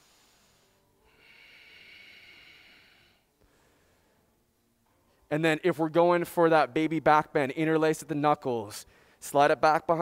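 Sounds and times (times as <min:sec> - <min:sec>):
person breathing: 0:00.0 - 0:04.4, 0:08.8 - 0:09.2.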